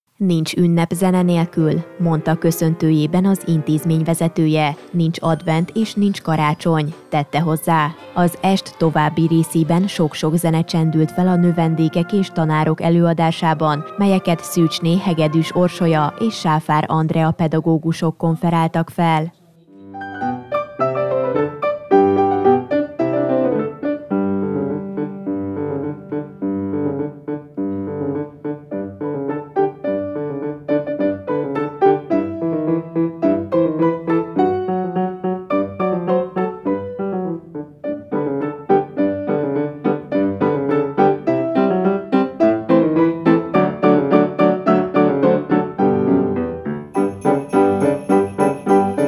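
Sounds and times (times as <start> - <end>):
grand piano duet: 0.3 - 17.3, 19.7 - 49.0.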